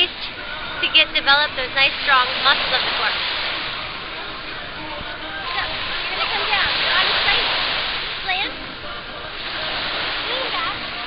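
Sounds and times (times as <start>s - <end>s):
distant people calling out: 0.0s - 11.0s
waves breaking on sandy shore: 0.0s - 11.0s.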